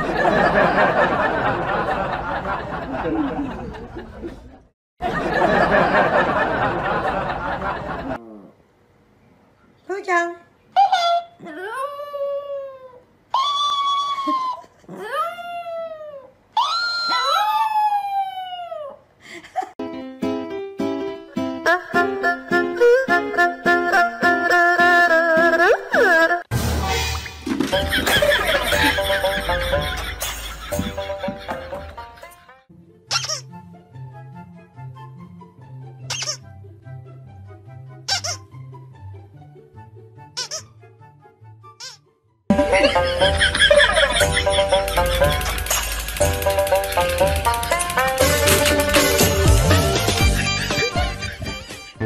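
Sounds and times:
background music: 19.8 - 52.0
squeaky toy squeaks: 33.1 - 33.5, 36.1 - 36.5, 38.1 - 38.5, 40.3 - 40.8, 41.7 - 42.1.

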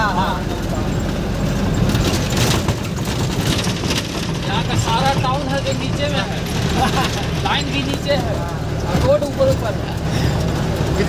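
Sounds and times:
truck engine rumble in cab: 0.0 - 11.0
small knocks and rattles: 1.7 - 10.9.

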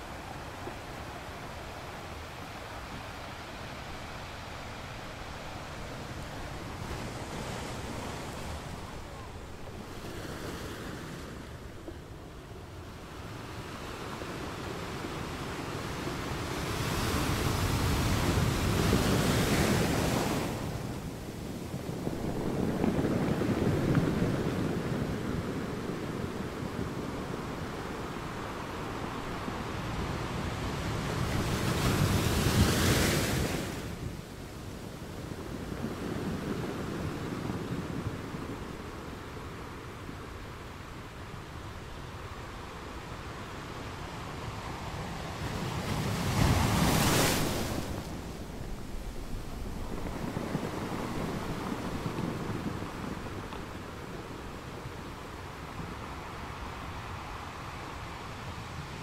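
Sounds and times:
surf breaking on rocky shore: 45.2 - 57.6.

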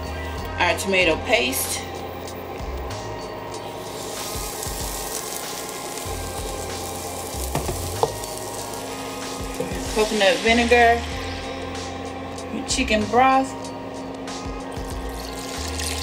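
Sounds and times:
paste sizzling in saucepan: 3.6 - 12.1, 14.7 - 16.0.

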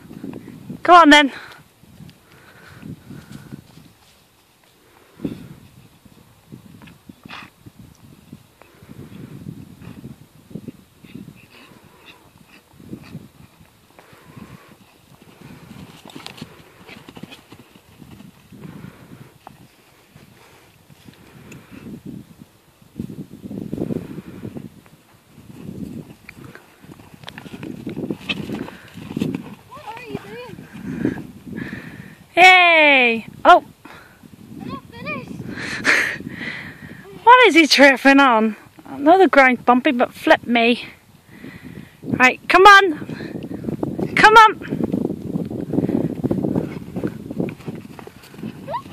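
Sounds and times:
hooves thudding on turf: 10.7 - 21.8, 24.8 - 31.8, 43.1 - 48.9.

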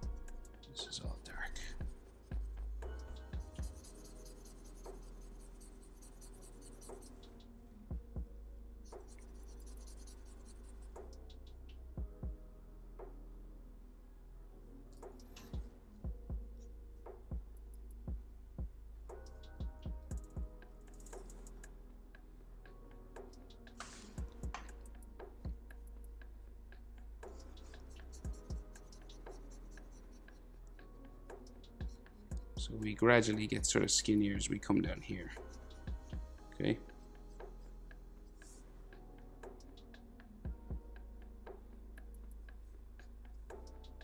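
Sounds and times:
marker drawing on paper: 0.0 - 7.6, 8.8 - 11.6, 27.2 - 32.3, 32.9 - 38.7.

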